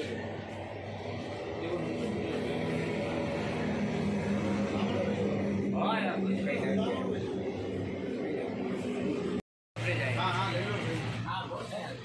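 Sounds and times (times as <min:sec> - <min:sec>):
machine humming: 0:00.0 - 0:11.2.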